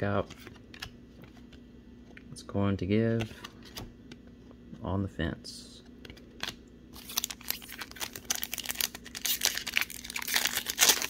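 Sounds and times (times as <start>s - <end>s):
foil wrapper crinkling and tearing: 6.4s - 11.0s.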